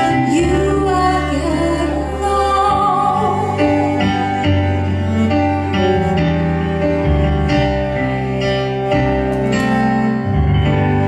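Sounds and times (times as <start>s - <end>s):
cello bowed notes: 0.0s - 11.0s
plucked accompaniment: 3.6s - 11.0s.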